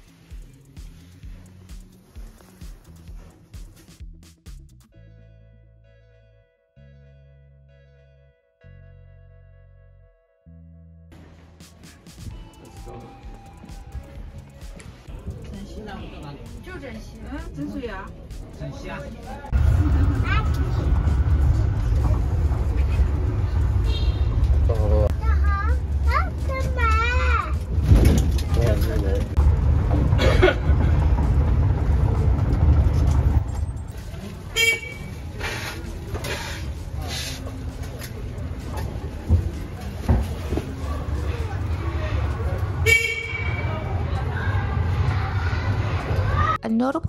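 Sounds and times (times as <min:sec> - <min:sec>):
bus low rumble: 0:00.0 - 0:04.3, 0:04.9 - 0:47.0
horn toot: 0:23.8 - 0:24.5, 0:34.5 - 0:36.6, 0:42.8 - 0:43.8
faint voices: 0:33.9 - 0:42.9.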